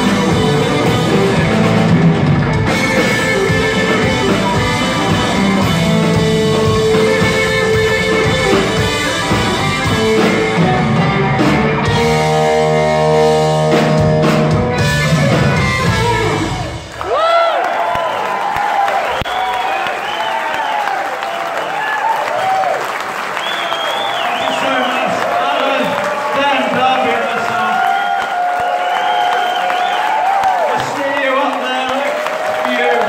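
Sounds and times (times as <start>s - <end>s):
rock band playing: 0.0s - 17.2s
audience cheering and shouting: 0.0s - 33.0s
audience applauding: 15.8s - 33.0s.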